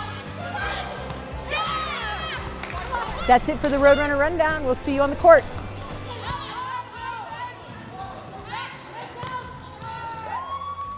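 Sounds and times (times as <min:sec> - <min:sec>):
background music: 0:00.0 - 0:10.9
sneakers squeaking on hardwood: 0:03.2 - 0:06.6, 0:09.2 - 0:10.2.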